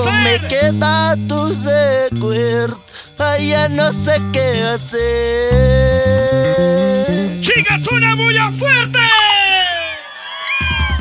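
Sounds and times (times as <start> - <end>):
live band music: 0.0 - 9.6
drum kit beat: 0.0 - 9.9.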